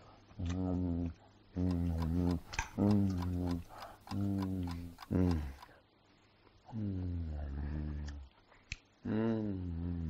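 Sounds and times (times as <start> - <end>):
clock ticking: 1.6 - 5.8
man humming while eating: 4.2 - 5.6, 6.7 - 8.3, 9.0 - 10.0.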